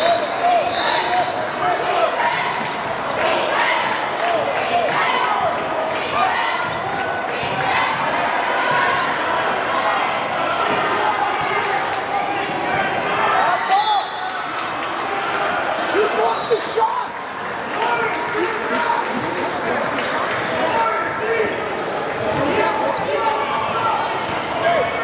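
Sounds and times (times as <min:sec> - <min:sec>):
echoing voices in a hall: 0:00.0 - 0:25.0.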